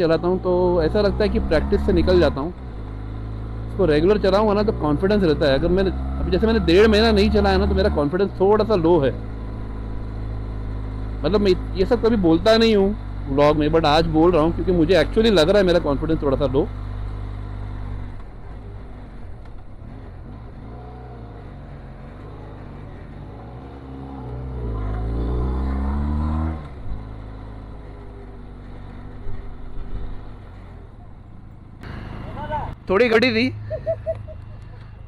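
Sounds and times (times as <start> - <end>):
motorcycle engine droning: 0.0 - 35.0.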